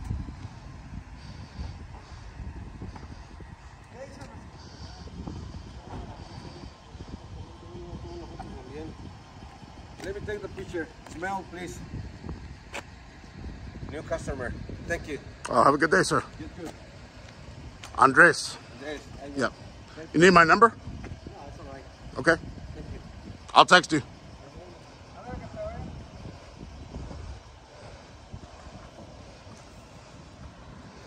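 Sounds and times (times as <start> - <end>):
low outdoor rumble: 0.0 - 31.0.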